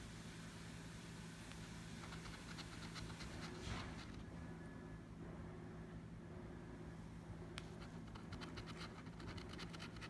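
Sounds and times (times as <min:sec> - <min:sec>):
faint low hum: 0:00.0 - 0:10.0
coin scratching lottery ticket: 0:08.0 - 0:10.0.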